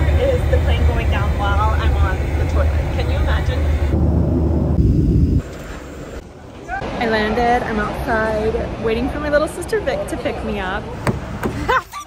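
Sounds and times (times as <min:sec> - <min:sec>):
woman talking: 0:00.0 - 0:03.7, 0:07.0 - 0:10.8
heavy rushing noise: 0:00.0 - 0:06.2
airliner cabin drone: 0:00.0 - 0:06.4.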